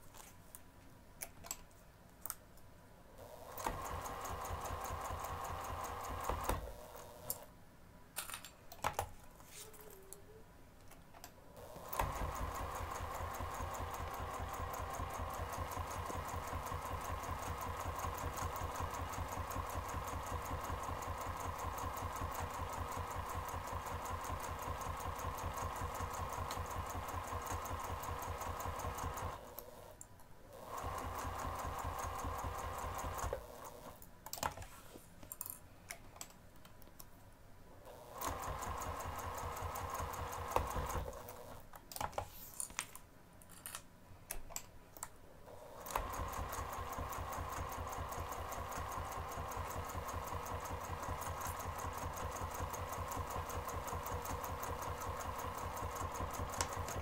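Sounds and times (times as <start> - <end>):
sewing machine stitching: 3.2 - 7.5, 11.6 - 34.0, 37.8 - 41.6, 45.5 - 57.0.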